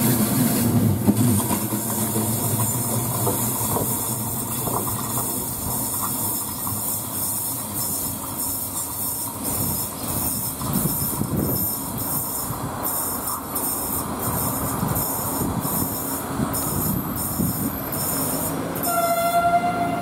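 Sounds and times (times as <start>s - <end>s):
train wheels rumbling on rails: 0.0s - 20.0s
train horn held note: 18.8s - 20.0s.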